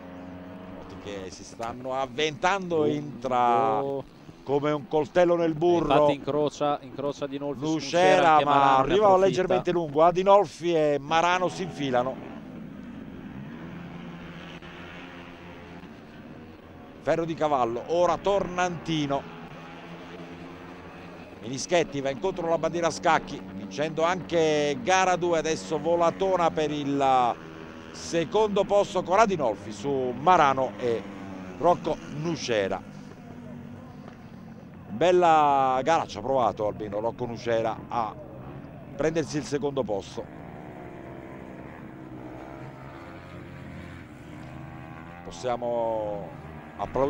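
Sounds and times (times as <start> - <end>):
racing scooter engines: 0.0 - 47.0
scooter engine running: 23.4 - 28.8, 29.9 - 34.9, 40.3 - 45.4.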